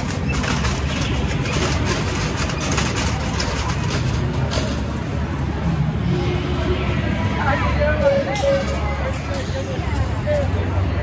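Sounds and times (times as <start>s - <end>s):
busy exhibition hall din: 0.0s - 11.0s.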